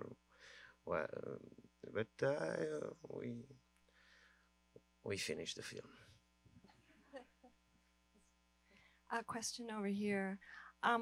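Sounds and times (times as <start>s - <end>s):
faint voice: 0.9s - 3.5s.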